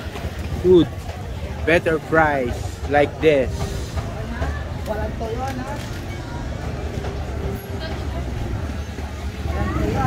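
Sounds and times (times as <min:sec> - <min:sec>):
faint voices of passers-by: 0:00.0 - 0:10.0
traffic and motorbikes rumble: 0:00.0 - 0:10.0.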